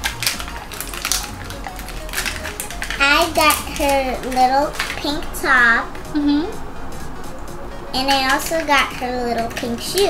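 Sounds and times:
packaging packets crinkling open: 0.0 - 5.0
background music: 0.0 - 10.0.

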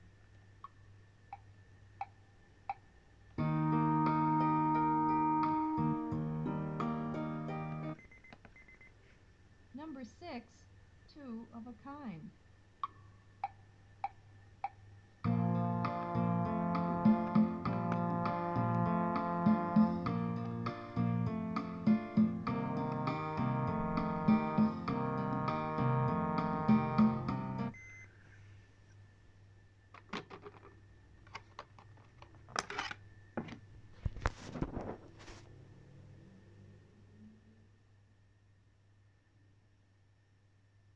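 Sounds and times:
instrumental band music playback: 3.4 - 8.0, 15.3 - 27.7.

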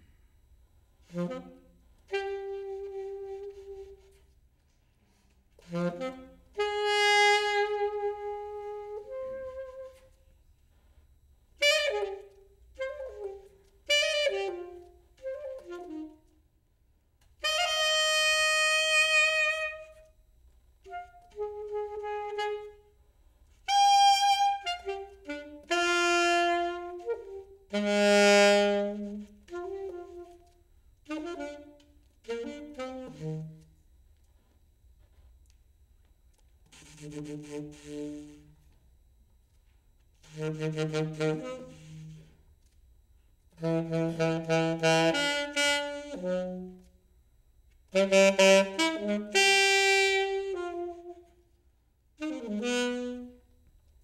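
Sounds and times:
saxophone playing: 1.0 - 4.4, 5.5 - 10.2, 11.5 - 16.5, 17.2 - 20.2, 20.8 - 33.8, 36.3 - 38.7, 40.2 - 42.4, 43.6 - 47.0, 47.9 - 53.6.

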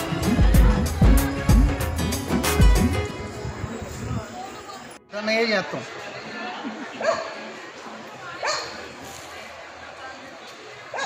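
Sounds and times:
people talking: 2.6 - 11.0
dog barking: 7.0 - 7.3, 8.4 - 8.8.

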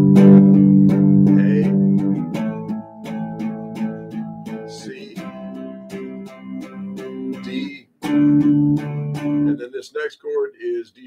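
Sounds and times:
electric guitar strumming chords: 0.0 - 9.6.

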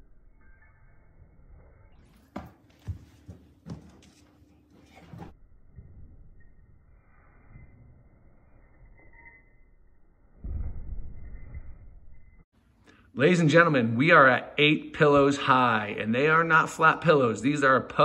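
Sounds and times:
feet thumping on rug-covered floor: 2.3 - 4.3.

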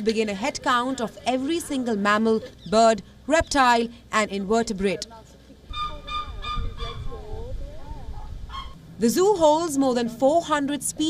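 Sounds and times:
low outdoor rumble: 0.0 - 11.0
bird honking calls: 5.7 - 7.3, 8.5 - 8.8.

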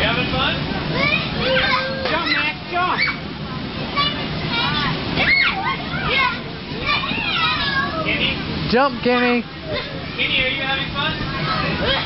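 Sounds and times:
children playing and calling out: 0.8 - 8.6, 9.4 - 10.4, 11.1 - 12.0.

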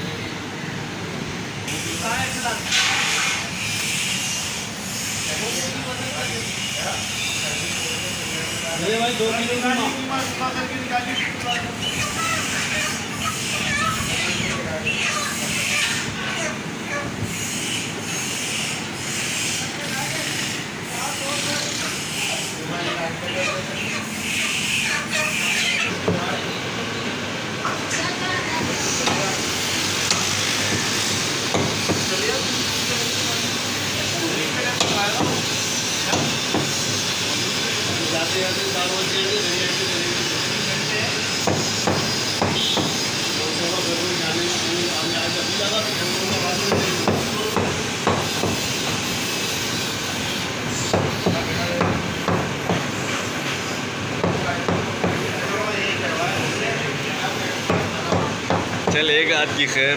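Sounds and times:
faint voices: 4.4 - 42.4
cleaver chopping meat on wood: 41.4 - 43.0, 46.7 - 48.7.

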